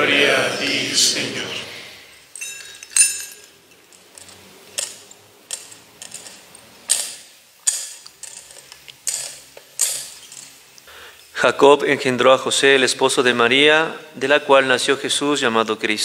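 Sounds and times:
metal censer chains clinking: 2.2s - 10.6s.

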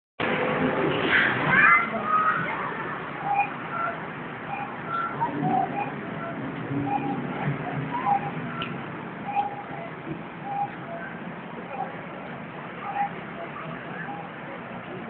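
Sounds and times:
background murmur: 0.2s - 15.0s
people's voices: 0.3s - 15.0s.

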